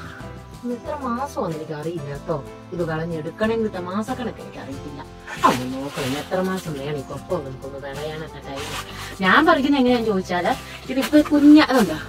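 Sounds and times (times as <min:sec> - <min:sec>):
background music: 0:00.0 - 0:12.0
person speaking: 0:04.1 - 0:12.0.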